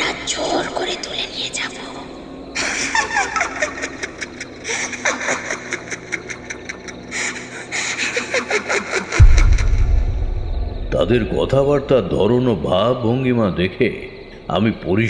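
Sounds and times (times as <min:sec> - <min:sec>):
rapid pulsing laughter: 0:02.6 - 0:09.7
sudden deep rumble: 0:09.2 - 0:12.4
distorted eerie voices: 0:09.2 - 0:13.2.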